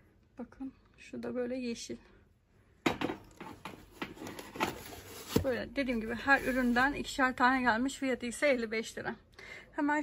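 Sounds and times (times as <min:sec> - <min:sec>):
ceramic scraping cardboard: 0:03.6 - 0:07.1.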